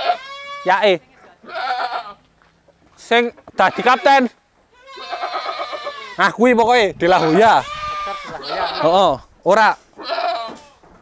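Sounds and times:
goat bleating: 0.0s - 2.2s, 3.6s - 9.2s, 10.0s - 10.8s.

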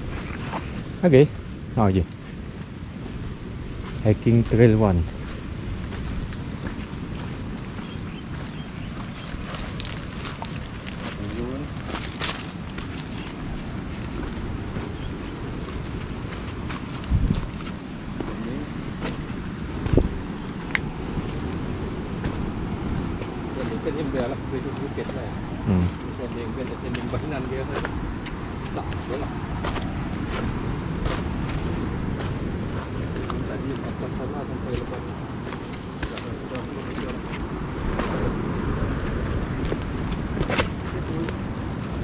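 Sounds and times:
handling and wind noise: 0.0s - 42.0s
footsteps on leaf litter: 2.3s - 21.6s.

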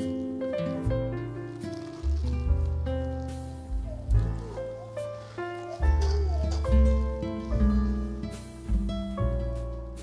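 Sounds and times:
background music with bass line: 0.8s - 10.0s.

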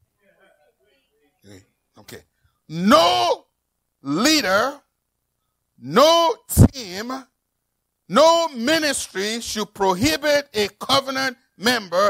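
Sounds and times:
faint voice murmuring: 0.2s - 2.1s.

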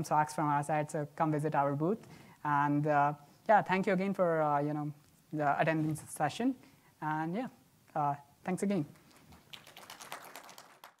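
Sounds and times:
faint applause: 9.5s - 11.0s.

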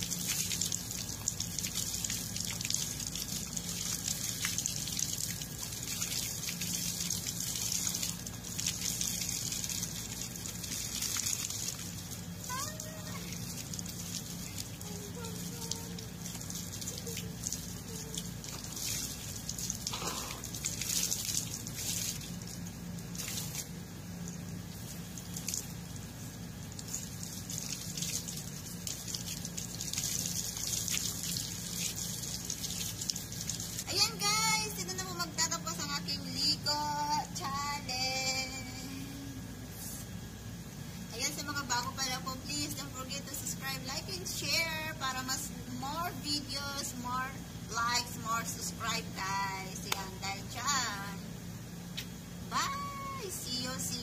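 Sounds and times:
water gushing: 0.0s - 35.5s.

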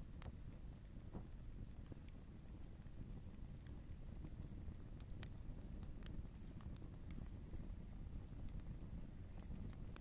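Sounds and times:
crackling fire pops: 0.0s - 10.0s
low steady rumble: 0.0s - 10.0s.

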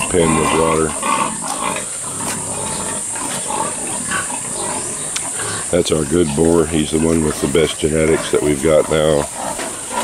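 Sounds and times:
pigs grunting: 0.0s - 10.0s
steady high hiss: 0.0s - 10.0s.

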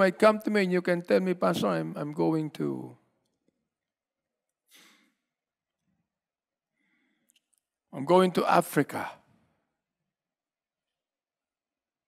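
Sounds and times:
man breathing: 4.7s - 5.4s, 6.7s - 7.4s.

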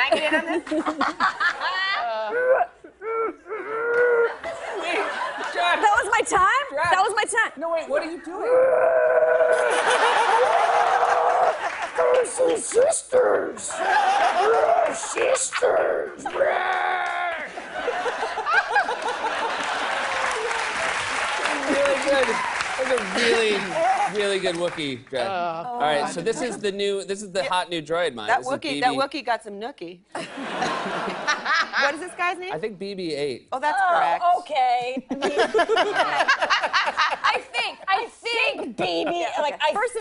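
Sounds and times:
woman laughing: 0.0s - 3.2s, 34.8s - 37.8s
people laughing: 0.0s - 6.1s, 9.3s - 12.8s, 13.6s - 24.5s, 30.2s - 32.1s, 35.0s - 39.6s
audience applauding: 9.5s - 12.8s, 16.2s - 25.2s.

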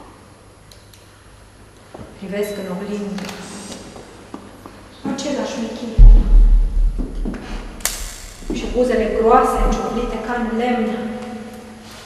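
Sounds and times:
microphone handling thuds: 6.0s - 10.5s.

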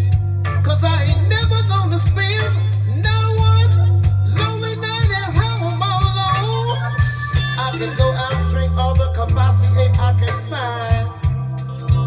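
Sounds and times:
bass line: 0.0s - 12.0s
guitar: 0.0s - 12.0s.

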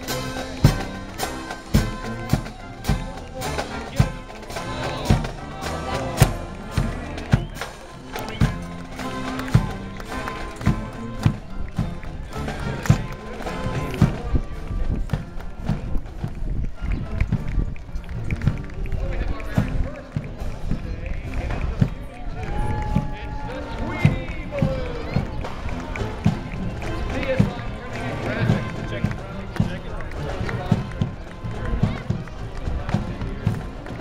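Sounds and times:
marching footsteps on pavement: 0.0s - 34.0s
music: 0.0s - 34.0s
voices: 0.0s - 34.0s.

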